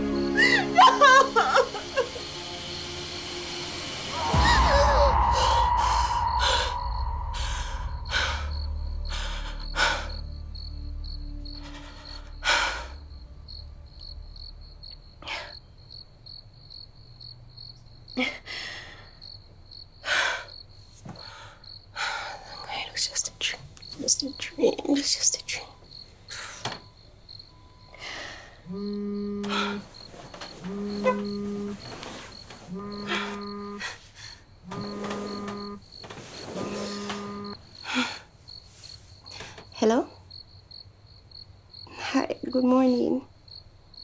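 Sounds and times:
crickets chirping: 0:00.0 - 0:44.0
deep cinematic boom: 0:04.1 - 0:09.2
woman breathing heavily and gasping: 0:04.3 - 0:10.3, 0:11.5 - 0:13.1, 0:18.2 - 0:19.2, 0:20.0 - 0:22.6, 0:27.9 - 0:30.0, 0:37.7 - 0:38.4.

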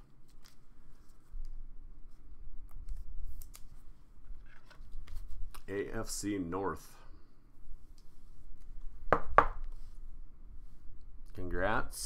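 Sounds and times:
soft scraping rustle: 0:07.7 - 0:09.0, 0:09.7 - 0:10.9.

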